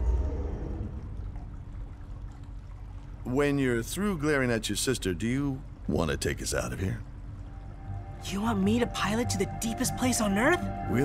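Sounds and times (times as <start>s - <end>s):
low rumble with faint hum: 0.0s - 11.0s
soft watery wash: 0.0s - 11.0s.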